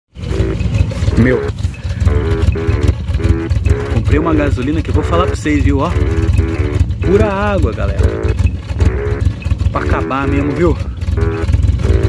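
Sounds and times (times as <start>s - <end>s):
car engine idling: 0.1s - 12.0s.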